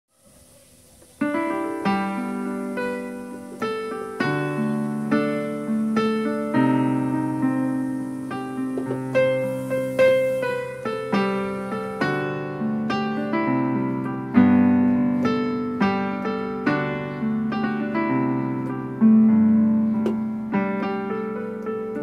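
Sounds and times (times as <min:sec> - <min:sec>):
keyboard piano melody: 0:00.1 - 0:22.0.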